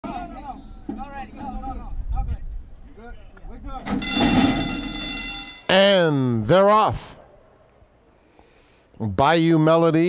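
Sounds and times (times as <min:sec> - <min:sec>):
people calling and shouting: 0:00.0 - 0:08.4
starting gate clanging open: 0:03.8 - 0:05.8
start bell ringing: 0:04.0 - 0:06.0.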